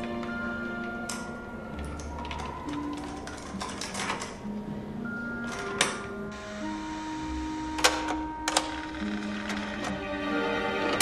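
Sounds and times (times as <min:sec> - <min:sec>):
soft music with held notes: 0:00.0 - 0:11.0.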